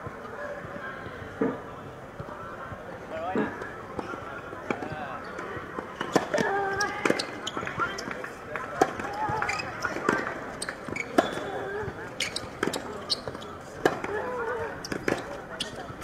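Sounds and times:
tennis ball bouncing on hard court: 4.7 - 16.0
tennis ball struck by rackets: 6.0 - 7.8, 12.3 - 16.0.

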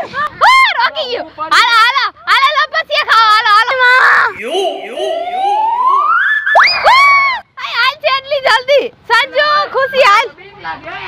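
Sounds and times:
slide whistle rising: 4.2 - 7.4.

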